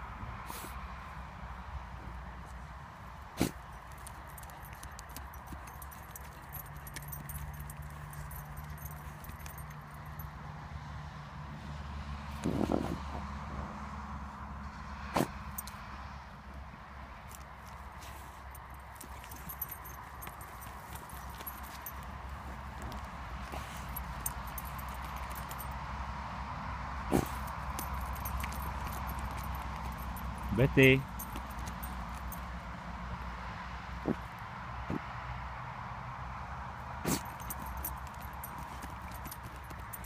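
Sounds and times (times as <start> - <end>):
dog scratching at soil: 3.4 - 9.8, 17.3 - 25.6, 27.1 - 32.5, 37.1 - 40.0
dry grass rustling: 17.2 - 25.7.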